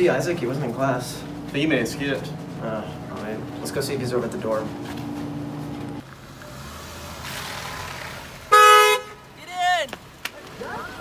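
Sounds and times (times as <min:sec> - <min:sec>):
car horn toot: 0:08.5 - 0:09.2.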